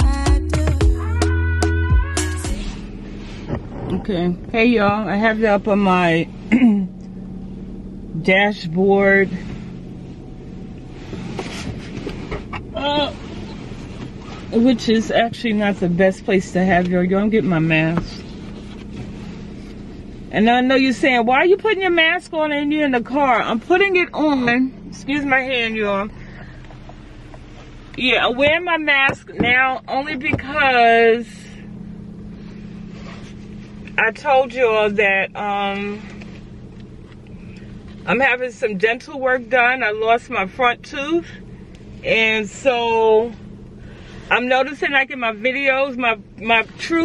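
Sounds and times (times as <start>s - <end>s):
car engine idling: 0.0s - 47.0s.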